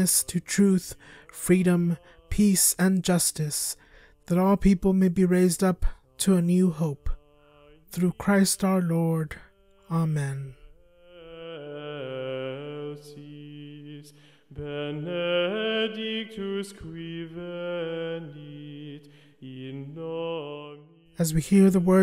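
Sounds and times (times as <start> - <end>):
person chanting slowly: 0.0 - 22.0.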